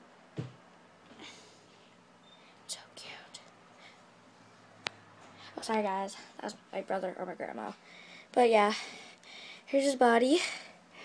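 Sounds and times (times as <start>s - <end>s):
person whispering: 2.7s - 3.5s.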